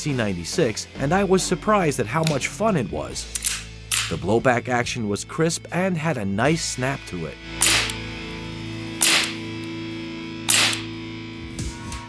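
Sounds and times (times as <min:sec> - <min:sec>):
background guitar music: 0:00.0 - 0:12.0
blowback action snap: 0:03.3 - 0:04.2, 0:07.6 - 0:08.0, 0:09.0 - 0:09.8, 0:10.5 - 0:10.9
bb pistol shots: 0:03.4 - 0:04.2, 0:07.6 - 0:08.0, 0:09.0 - 0:09.5, 0:10.5 - 0:10.9.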